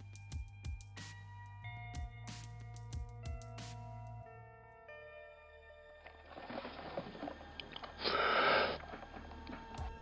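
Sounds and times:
person sniffing: 8.0s - 8.9s.

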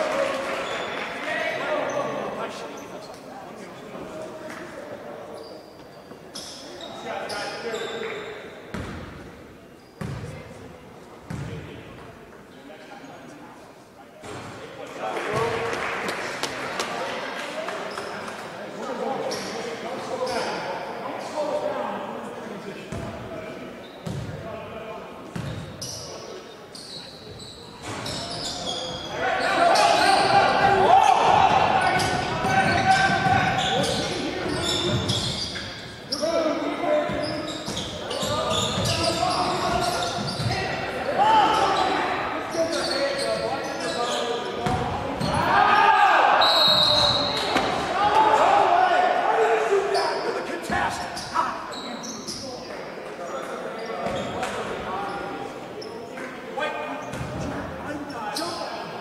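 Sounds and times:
people shouting in echoing hall: 29.0s - 35.0s, 38.3s - 42.8s, 45.0s - 51.7s.

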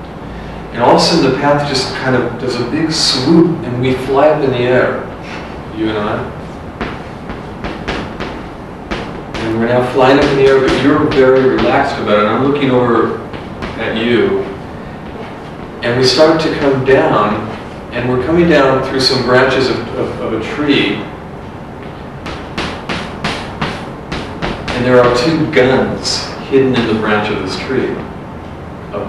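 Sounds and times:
low room hum: 0.0s - 29.0s
chalk tapping on blackboard: 6.8s - 11.9s, 22.2s - 25.3s
chalk scraping on blackboard: 22.6s - 24.8s.

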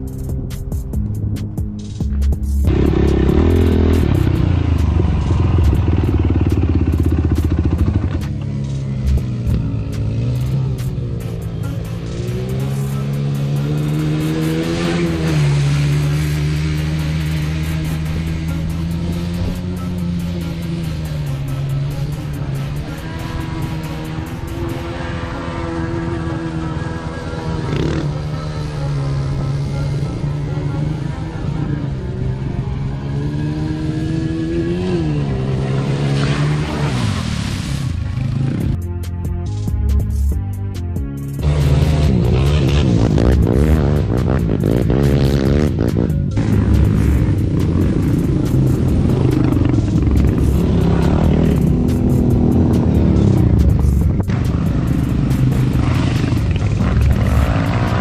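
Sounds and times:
atv engine revving: 2.7s - 38.8s, 41.4s - 58.0s.

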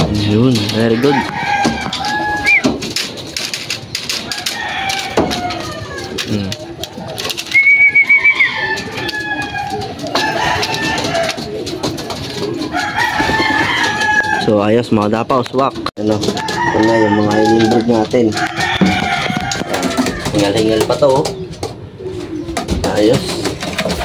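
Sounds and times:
birds calling: 0.0s - 24.0s
pigeons cooing: 0.0s - 24.0s
high wavering bird call: 7.5s - 8.6s.

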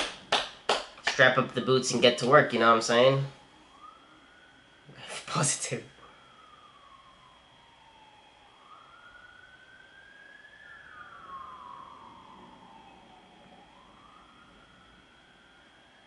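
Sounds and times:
faint high whine: 0.0s - 16.0s
faint siren wailing: 1.1s - 16.0s.

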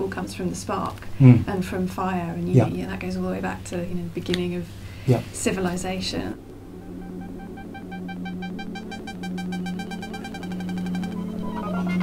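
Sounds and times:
synthesizer pulsed notes: 5.9s - 12.0s
low synth drone: 6.0s - 12.0s
rising run of notes: 6.3s - 12.0s.

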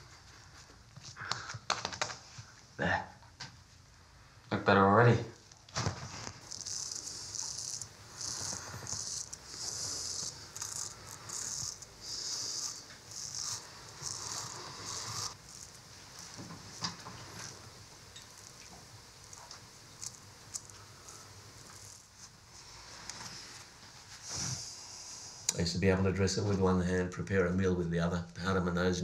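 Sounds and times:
razor scraping stubble: 6.0s - 23.7s.

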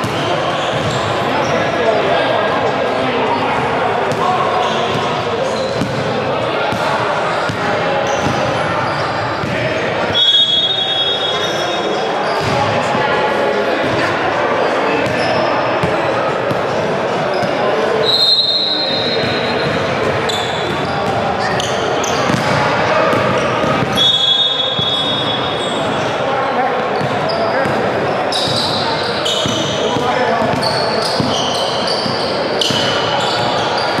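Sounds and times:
sneaker squeaks: 0.0s - 1.8s, 3.3s - 13.0s, 15.0s - 26.2s, 27.0s - 34.0s.

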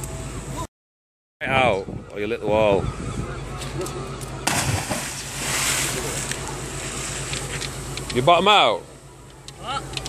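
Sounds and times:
steady low hum: 2.8s - 10.0s
splash into water: 4.4s - 6.3s
rushing spray and churning water: 4.5s - 7.3s.

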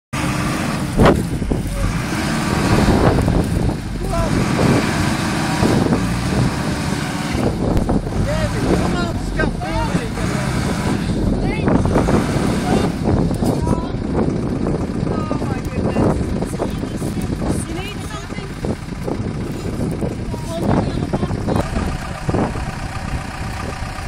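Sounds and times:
minibus engine running: 0.1s - 24.0s.

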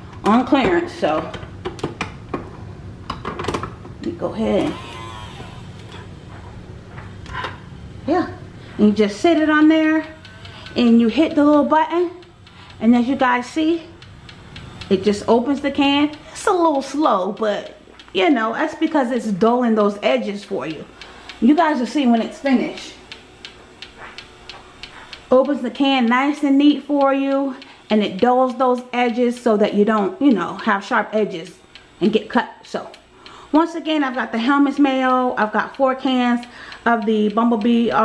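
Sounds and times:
electric can opener humming: 0.0s - 38.0s
faint ticks: 27.0s - 28.3s.

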